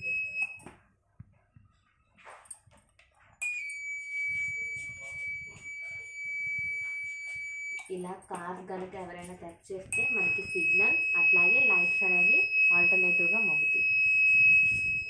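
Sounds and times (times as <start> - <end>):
high-pitched alarm buzzer: 3.4 - 7.9, 9.9 - 15.0.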